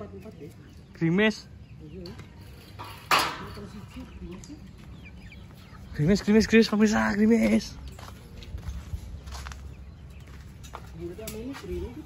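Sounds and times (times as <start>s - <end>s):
chickens clucking: 0.0s - 12.0s.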